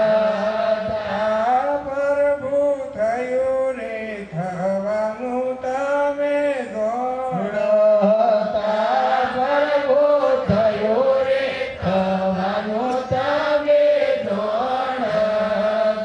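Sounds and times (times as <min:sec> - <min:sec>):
person chanting: 0:00.0 - 0:16.0.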